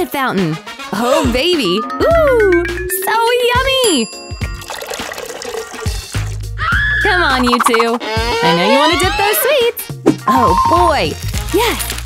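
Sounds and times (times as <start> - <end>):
background music: 0.0 - 12.0
chocolate fountain trickling: 4.4 - 6.3.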